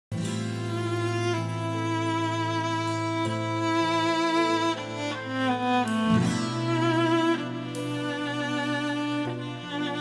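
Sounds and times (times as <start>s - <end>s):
bowed strings holding slow notes: 0.2s - 10.0s.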